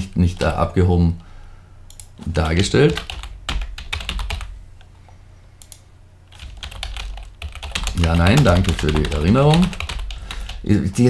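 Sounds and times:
computer keyboard typing: 1.9 - 4.5, 5.6 - 10.7.

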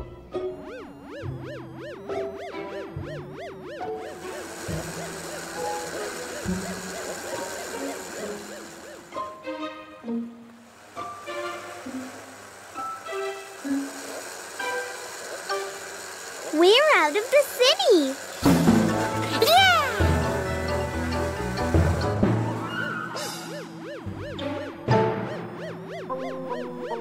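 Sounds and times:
cartoon string music: 0.4 - 27.0
warbling sound effect: 0.6 - 9.2, 13.8 - 27.0.

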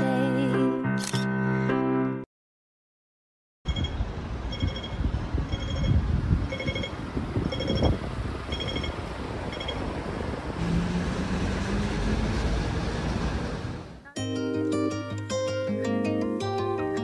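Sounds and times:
short electronic beeps: 3.7 - 7.9, 8.5 - 9.8
city street traffic: 3.7 - 14.2.

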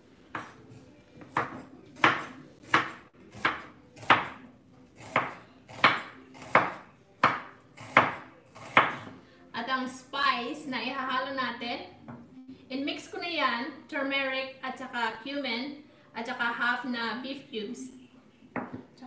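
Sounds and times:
knife slicing onion on board: 0.3 - 0.6, 1.2 - 9.2.

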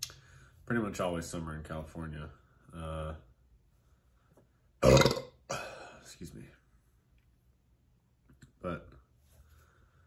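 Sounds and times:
man's throat noise: 4.8 - 5.8.

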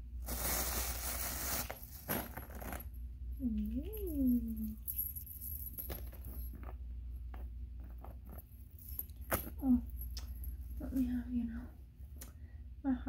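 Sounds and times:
plastic bag rustling: 0.2 - 3.0
chain clinking: 3.4 - 6.8, 8.3 - 11.1.

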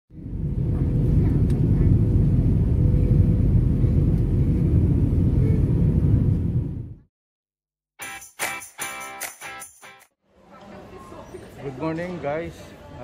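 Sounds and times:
jet engine rumble: 0.1 - 7.1.

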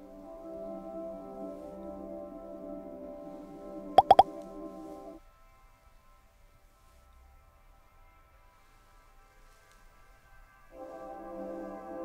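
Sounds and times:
ambient music pad: 0.0 - 12.0.

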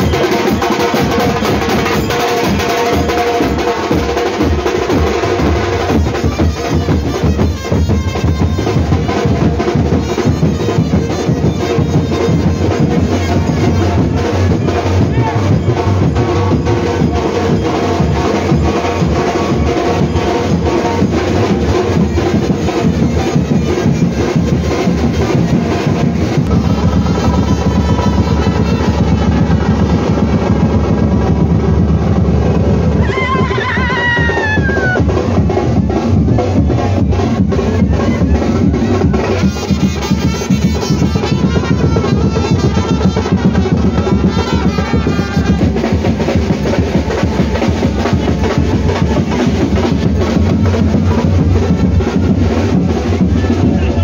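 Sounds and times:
drums beating fast: 0.0 - 54.0.

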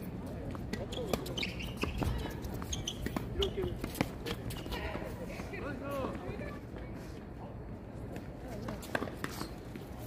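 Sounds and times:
players' footsteps: 0.0 - 6.9
tennis ball bounces and strikes: 8.5 - 9.8.

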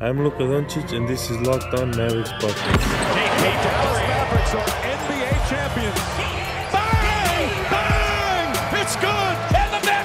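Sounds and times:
intro music: 0.3 - 10.0.

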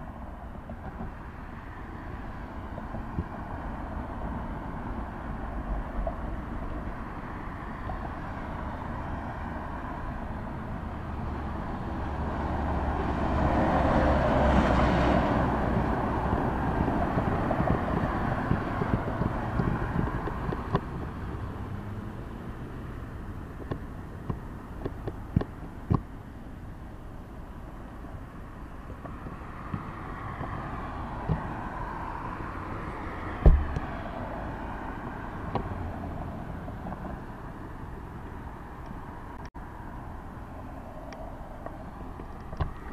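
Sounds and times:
steady low traffic rumble: 0.0 - 42.9
vehicle passing: 1.8 - 24.7
sharp knock: 33.4 - 33.8.

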